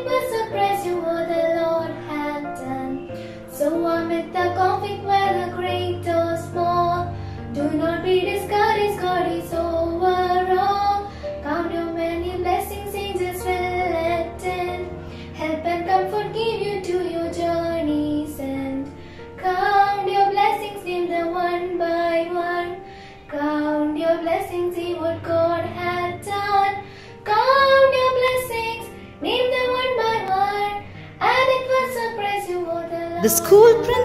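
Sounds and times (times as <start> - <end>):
low instrumental backing: 32.7 - 34.0.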